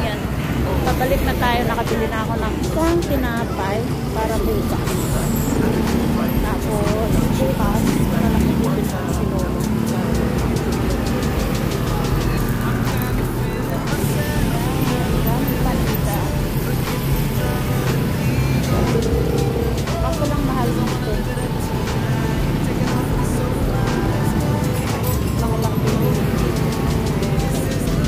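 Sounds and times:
bustle of street market: 0.0s - 28.0s
pop song with vocals: 0.0s - 28.0s.

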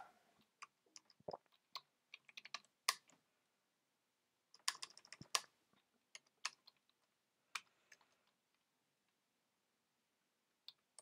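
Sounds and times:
computer keyboard typing: 0.9s - 3.1s, 4.6s - 5.5s.

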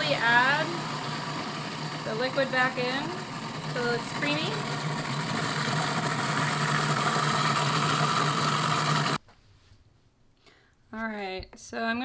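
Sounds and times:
food processor motor running: 0.0s - 9.2s.

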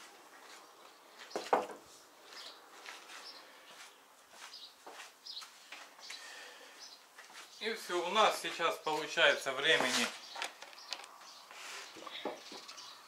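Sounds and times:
small birds chirping: 0.4s - 13.0s
rustles: 8.3s - 12.9s.

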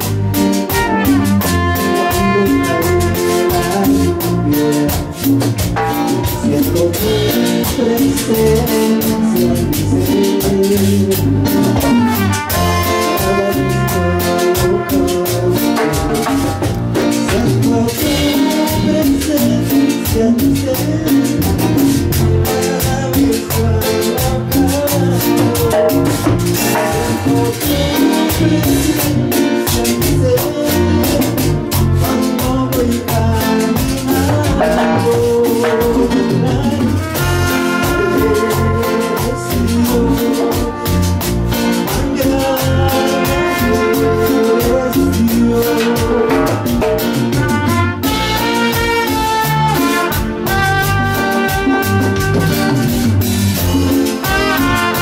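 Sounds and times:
trumpets playing a melody: 0.0s - 19.9s, 24.0s - 55.0s
bass and drums: 0.0s - 55.0s
electronic keyboard: 0.0s - 55.0s
live band music: 0.0s - 55.0s
steady percussion beat: 0.0s - 55.0s.

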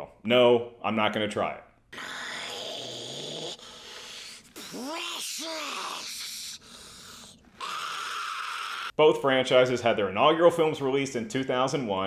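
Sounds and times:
raspy hissing voice: 2.0s - 8.9s.

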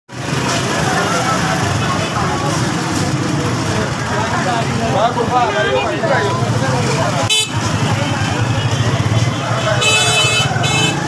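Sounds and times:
crowd chatter: 0.1s - 11.0s.

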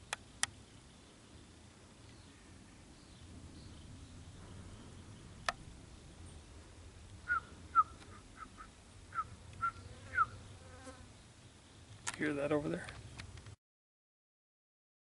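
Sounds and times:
short chirping calls: 7.2s - 10.7s.

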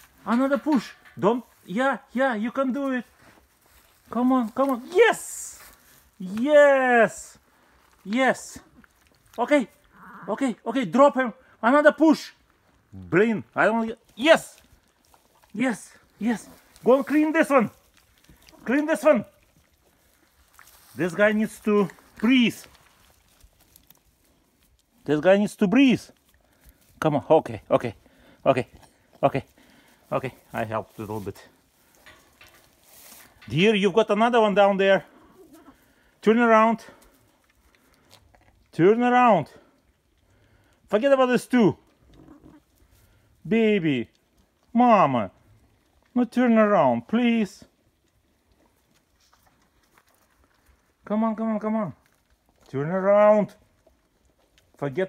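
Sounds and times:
straw rustling: 0.0s - 38.8s, 39.5s - 55.0s
sheep rustling in straw: 2.8s - 6.4s, 16.1s - 24.9s, 29.9s - 33.5s.

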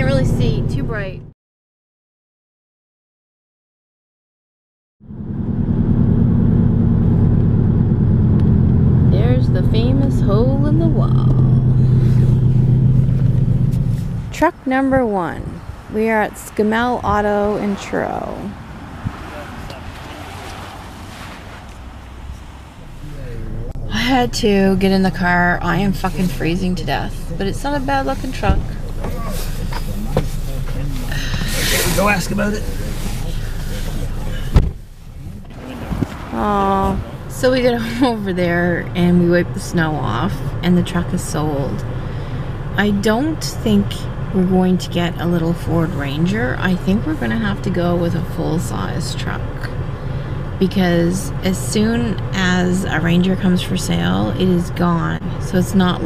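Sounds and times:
car road and engine rumble: 0.0s - 1.4s, 5.0s - 56.0s
car door slamming: 34.4s - 34.9s.

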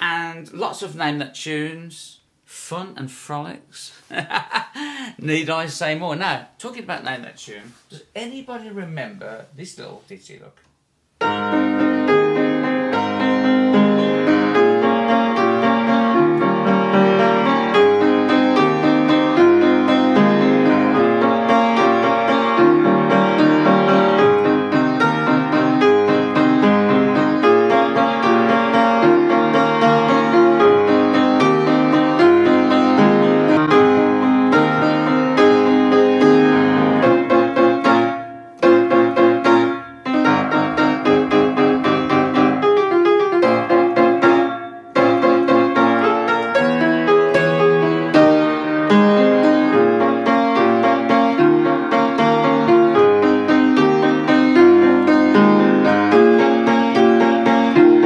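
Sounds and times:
upright piano lively tune: 11.2s - 58.0s.

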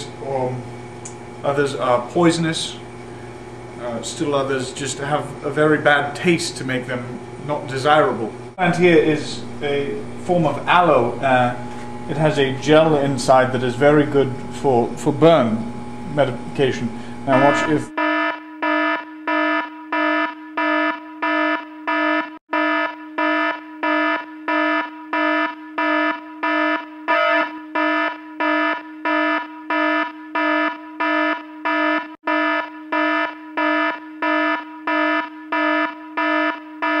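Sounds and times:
electronic alarm beeping: 17.3s - 37.0s.

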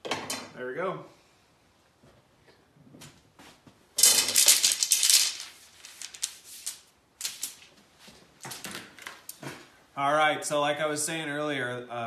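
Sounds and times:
wooden arrows clattering: 4.0s - 7.8s.

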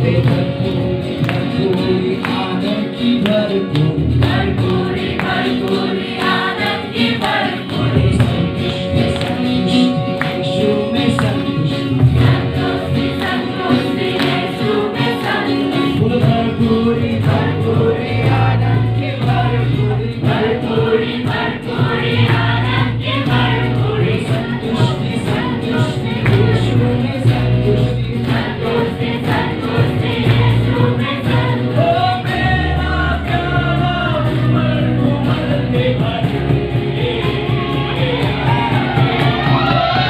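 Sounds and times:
acoustic guitar: 0.0s - 40.0s
electric guitar: 0.0s - 40.0s
keyboard: 0.0s - 40.0s
voices singing together: 0.0s - 40.0s.

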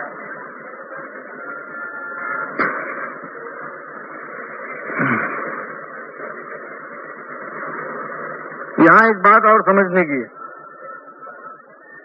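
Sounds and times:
narrow-band recording hiss: 0.0s - 12.0s
man's voice: 8.8s - 10.3s.

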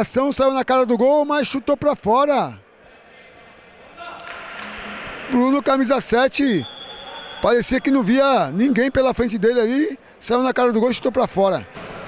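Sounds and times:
echoing sports hall noise: 0.0s - 12.0s.

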